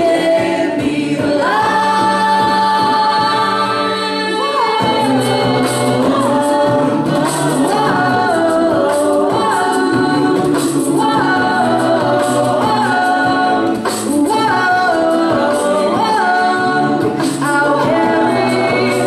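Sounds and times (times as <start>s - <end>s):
beatboxing: 0.0s - 19.0s
group singing in harmony: 0.0s - 19.0s.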